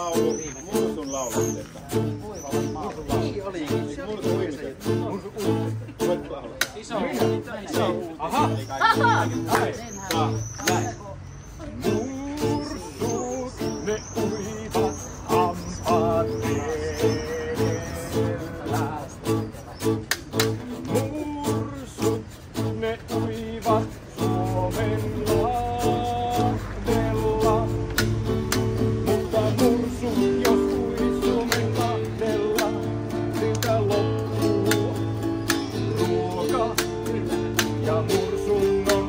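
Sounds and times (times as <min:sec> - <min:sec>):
acoustic guitar strumming: 0:00.0 - 0:39.0
person singing: 0:11.6 - 0:19.5, 0:20.3 - 0:39.0.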